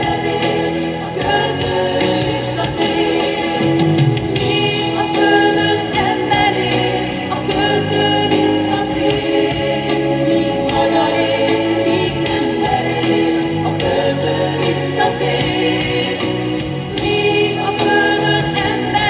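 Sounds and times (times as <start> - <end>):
choir singing held notes: 0.0 - 19.0.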